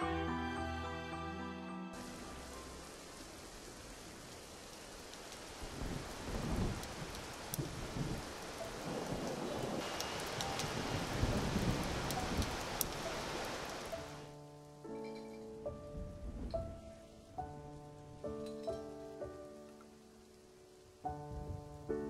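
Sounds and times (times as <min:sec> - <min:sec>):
heavy rain falling: 0:02.0 - 0:14.8, 0:15.7 - 0:22.0
sharp raindrop ticks: 0:03.4 - 0:14.3
low rumbles of thunder: 0:05.6 - 0:13.0, 0:15.7 - 0:17.0, 0:21.2 - 0:22.0.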